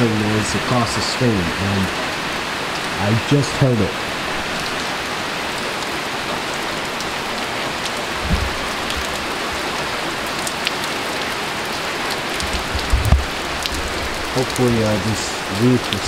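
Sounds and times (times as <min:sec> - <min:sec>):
heavy rain on a roof: 0:00.0 - 0:16.0
low thumps: 0:08.1 - 0:09.7, 0:12.4 - 0:14.4.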